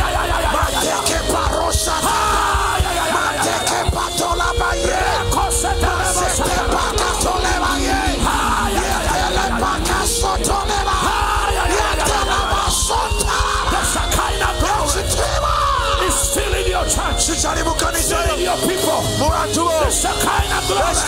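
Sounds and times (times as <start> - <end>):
loud live music over sound system: 0.0 - 21.0
man yelling through microphone: 11.3 - 21.0.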